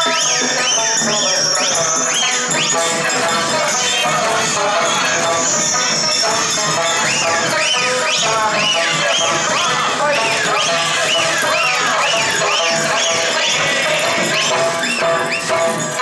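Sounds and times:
folk music over loudspeaker: 0.0s - 16.0s.

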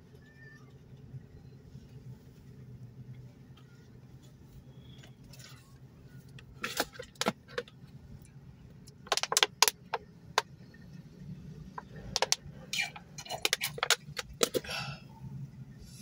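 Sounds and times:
low steady car cabin hum: 0.0s - 16.0s
plastic water bottle crinkling: 12.2s - 14.6s.

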